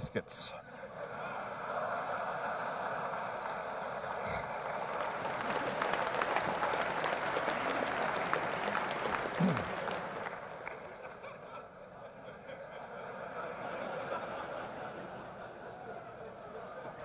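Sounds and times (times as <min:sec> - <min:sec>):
audience laughing: 0:00.7 - 0:17.0
audience applauding: 0:02.2 - 0:11.4.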